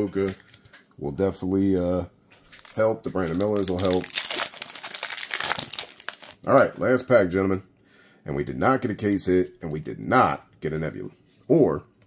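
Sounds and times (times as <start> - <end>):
plastic wrapper crinkling: 2.4 - 6.8
wrapper tearing crackles: 2.5 - 6.7.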